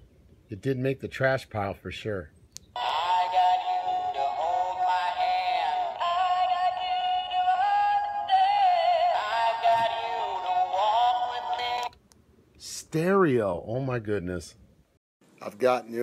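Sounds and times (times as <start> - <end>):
tinny toy song with singing: 2.8 - 12.0.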